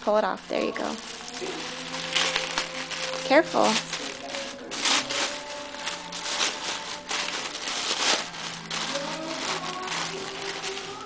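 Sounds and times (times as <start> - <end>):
wrapping paper tearing and rustling: 0.5 - 11.0.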